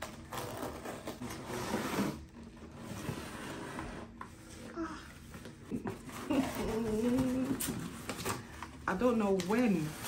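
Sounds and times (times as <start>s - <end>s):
woman humming: 5.7s - 7.9s
woman speaking: 8.9s - 10.0s.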